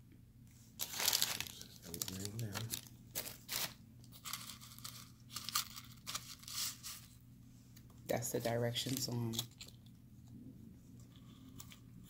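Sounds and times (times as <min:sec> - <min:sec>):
paper and plastic crinkling: 0:00.8 - 0:07.2, 0:08.4 - 0:09.8.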